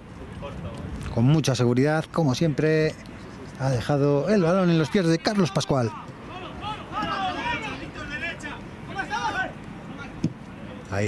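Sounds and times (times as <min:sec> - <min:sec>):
outdoor background noise: 0:00.0 - 0:11.0
commentary: 0:00.4 - 0:11.0
raised voices calling out: 0:04.4 - 0:10.2.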